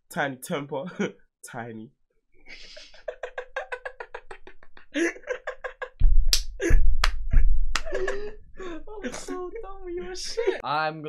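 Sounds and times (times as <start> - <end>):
hearty laughter: 2.5 - 6.0, 6.6 - 10.6
loud hand slaps: 6.3 - 8.2.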